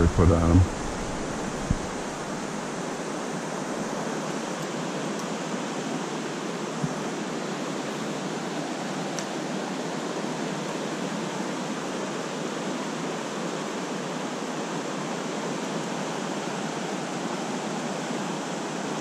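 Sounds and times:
stream water rushing: 0:00.0 - 0:19.0.

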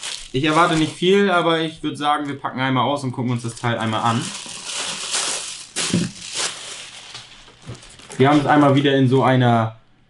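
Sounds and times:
bubble wrap crinkling: 0:00.0 - 0:01.6, 0:03.3 - 0:09.0.

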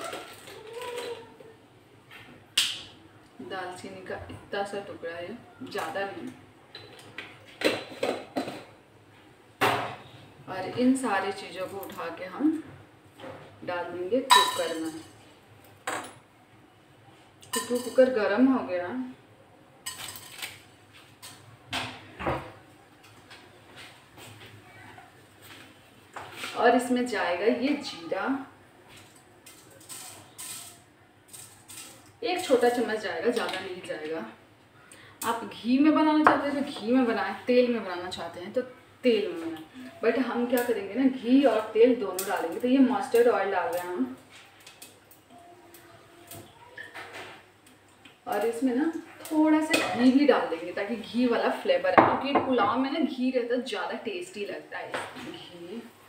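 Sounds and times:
kitchen utensils clattering: 0:06.7 - 0:08.8, 0:14.2 - 0:15.2, 0:17.4 - 0:18.2, 0:19.8 - 0:22.6.

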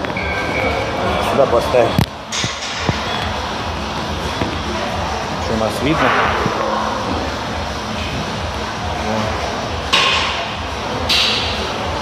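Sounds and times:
gym background noise: 0:00.0 - 0:12.0.

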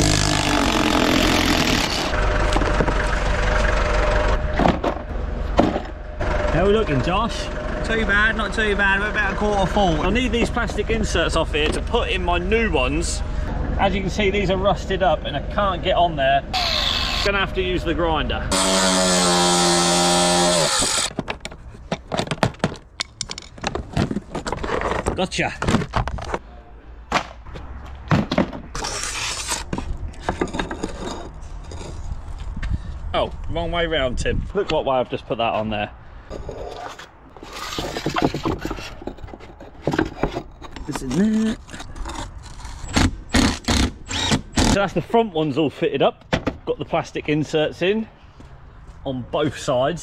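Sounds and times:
angle grinder cutting metal: 0:16.6 - 0:17.3, 0:18.5 - 0:21.1
plastic parts knocking: 0:21.1 - 0:26.4
plastic scraping against metal: 0:21.1 - 0:26.4, 0:36.3 - 0:43.8.

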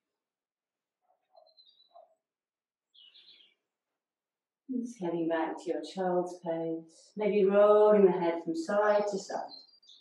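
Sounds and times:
faint bird chirp: 0:01.2 - 0:02.2, 0:02.9 - 0:03.7, 0:09.0 - 0:10.0.

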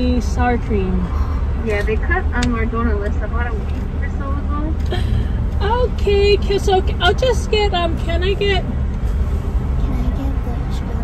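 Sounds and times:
car idling hum: 0:00.0 - 0:11.0.

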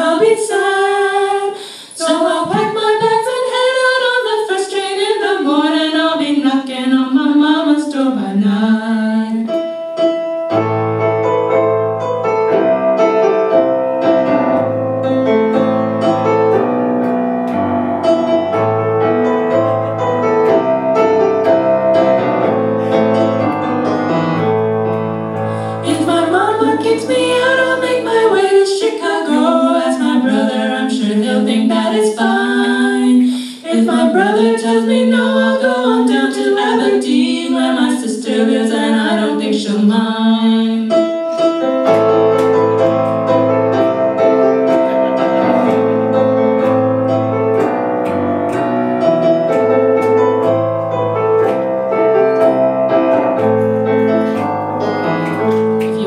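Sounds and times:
woman singing: 0:00.0 - 0:09.5, 0:25.7 - 0:41.0
keyboard playing piano chords: 0:08.9 - 0:33.0, 0:40.8 - 0:56.0.

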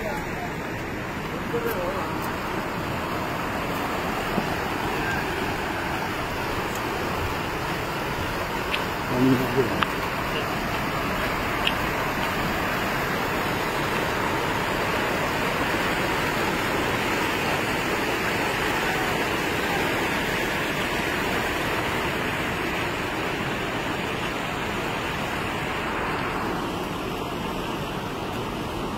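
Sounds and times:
flood river rushing: 0:00.0 - 0:28.9.

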